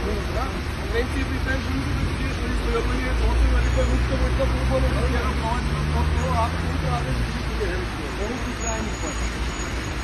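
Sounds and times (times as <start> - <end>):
traffic rumble on wet road: 0.0 - 10.0.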